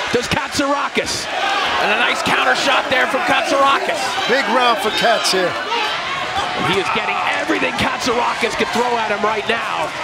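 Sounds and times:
television commentary: 0.0s - 5.8s, 6.4s - 10.0s.

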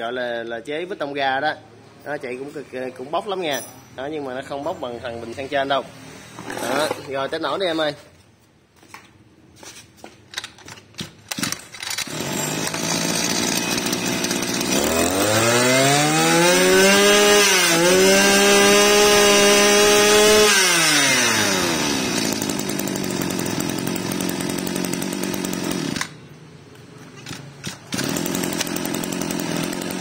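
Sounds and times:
brush-cutter engine pull-start: 6.3s - 7.3s, 10.3s - 26.2s, 27.1s - 30.0s
brush-cutter engine revving: 6.4s - 7.1s, 11.3s - 26.2s, 27.2s - 30.0s.

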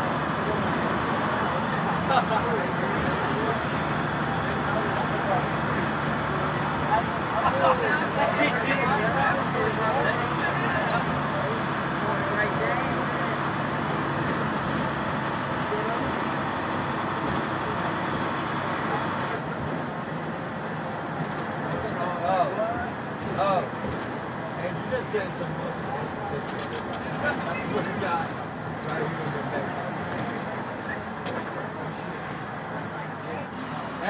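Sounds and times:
diesel engine drone: 0.0s - 34.0s
road noise: 0.0s - 34.0s.

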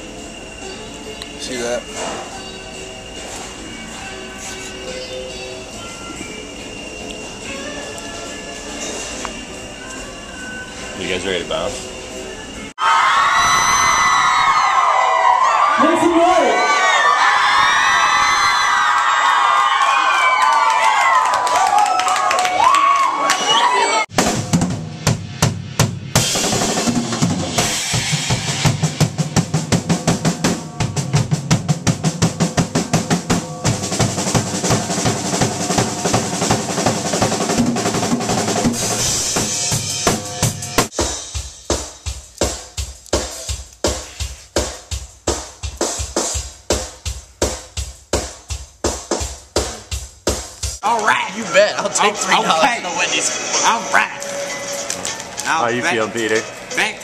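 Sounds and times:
steady drum beat: 24.1s - 51.1s
band music with drum kit: 24.1s - 51.4s.

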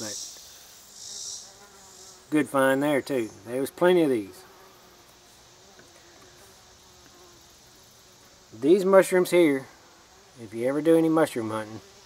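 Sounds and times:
insects buzzing: 0.0s - 12.0s.

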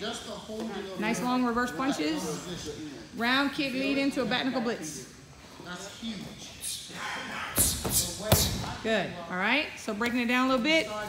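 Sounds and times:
quick hissing swishes: 6.6s - 8.7s.

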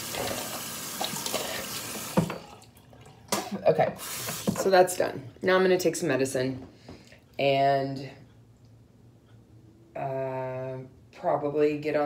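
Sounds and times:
tap water splashing into sink: 0.0s - 4.7s.

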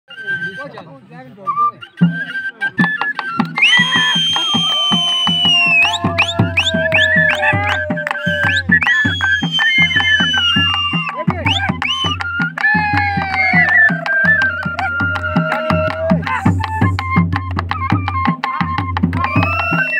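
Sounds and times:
flute melody: 0.1s - 19.9s
barrel drum beaten by hand: 3.8s - 19.8s.

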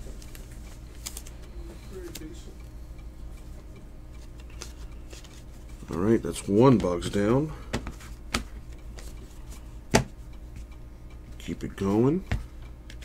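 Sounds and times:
steady low hum: 0.0s - 13.0s
cards and plastic sleeves handled: 4.2s - 7.0s.

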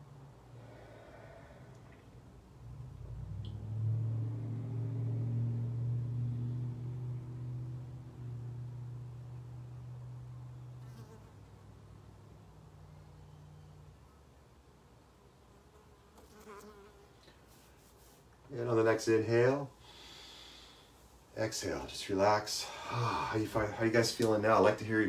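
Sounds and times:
man humming low: 22.7s - 23.5s.

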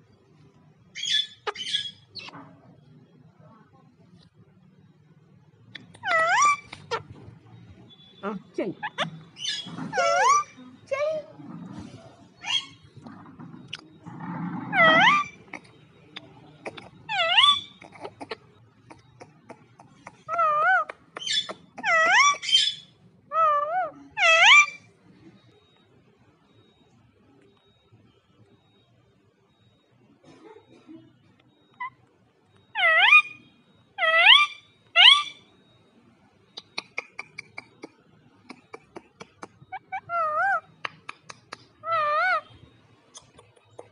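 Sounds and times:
parakeet call: 6.0s - 7.1s, 14.7s - 15.7s, 16.6s - 24.8s, 32.7s - 33.4s, 34.0s - 35.4s, 41.8s - 42.5s.

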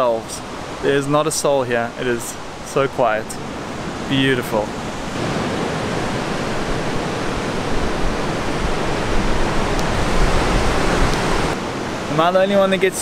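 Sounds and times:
ocean surf breaking: 0.0s - 13.0s.

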